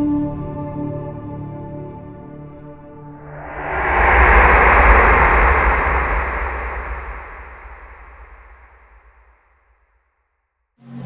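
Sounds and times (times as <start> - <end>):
whooshing rush over deep rumble: 3.2 - 9.4.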